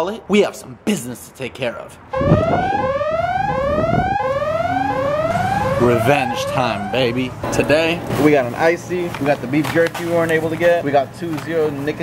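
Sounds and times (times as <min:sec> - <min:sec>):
electronic siren-like alarm: 0:02.1 - 0:07.4.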